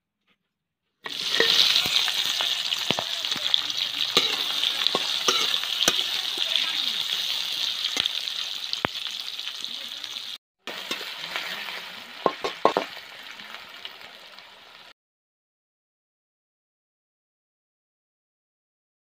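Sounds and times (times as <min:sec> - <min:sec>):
metal spatula scraping pan: 0:01.1 - 0:08.4, 0:10.7 - 0:12.9
onions sizzling in hot oil: 0:01.1 - 0:14.9.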